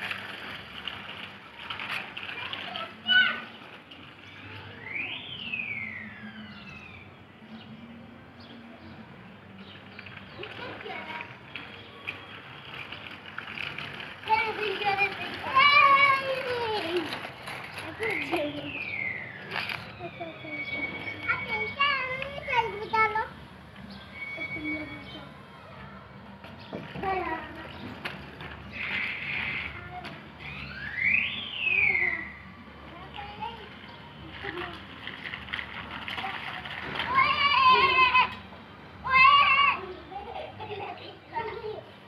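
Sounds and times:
bicycle rolling over concrete: 0:00.0 - 0:42.0
young children calling and shouting: 0:01.6 - 0:07.8, 0:08.4 - 0:35.4, 0:36.0 - 0:42.0.

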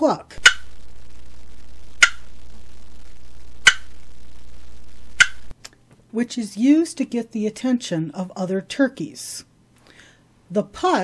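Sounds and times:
steady low hum: 0:00.4 - 0:05.5.

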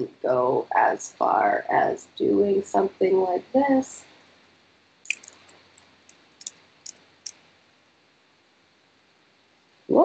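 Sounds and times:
computer mouse clicking: 0:05.1 - 0:07.4.

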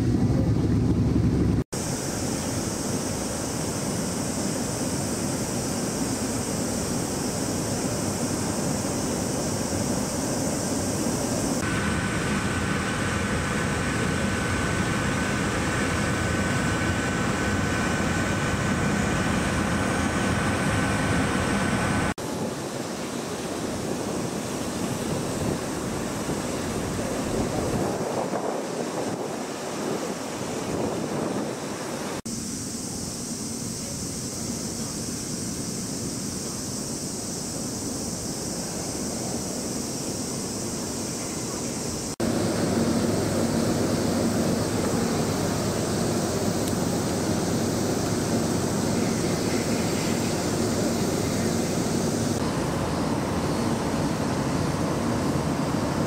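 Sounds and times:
wind on microphone: 0:00.0 - 0:32.2
thin high whine: 0:01.8 - 0:56.0.

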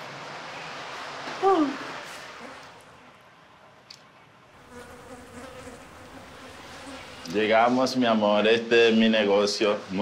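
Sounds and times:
flies buzzing: 0:04.6 - 0:07.5.

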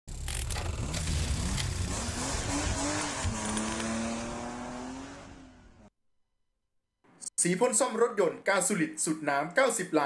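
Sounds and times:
car engine: 0:00.1 - 0:05.9.

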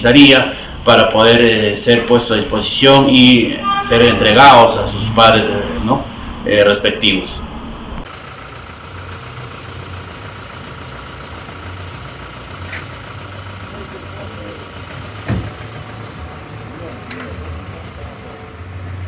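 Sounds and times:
car engine idling: 0:00.0 - 0:19.0
faint voices: 0:00.9 - 0:07.5, 0:13.6 - 0:18.8.

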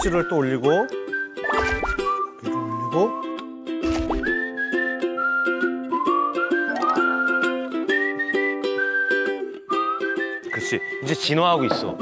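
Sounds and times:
whistled tune: 0:00.0 - 0:12.0.

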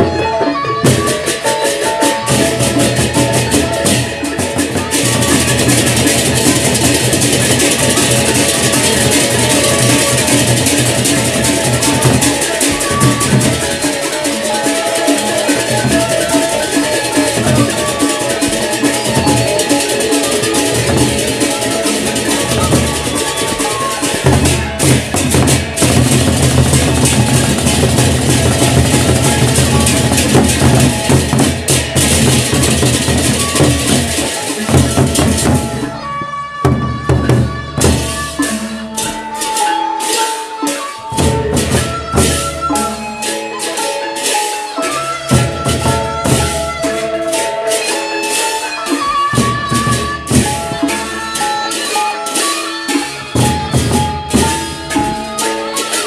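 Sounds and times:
ringing pitched notes: 0:00.0 - 0:56.0
crashing hand cymbals: 0:00.1 - 0:56.0
barrel drums beaten with sticks: 0:00.9 - 0:35.9, 0:53.2 - 0:55.6.

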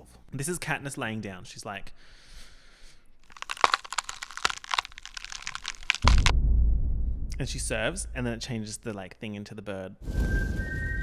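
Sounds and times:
crackling and crinkling clicks: 0:03.2 - 0:06.3.

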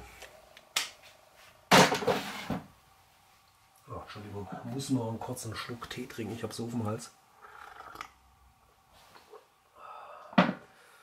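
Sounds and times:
man sipping tea: 0:07.4 - 0:08.2.

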